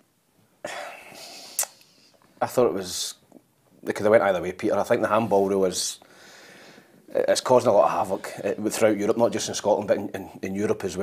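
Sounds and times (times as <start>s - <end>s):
mouth click: 1.5s - 2.0s
person speaking: 2.4s - 6.1s, 7.1s - 11.0s.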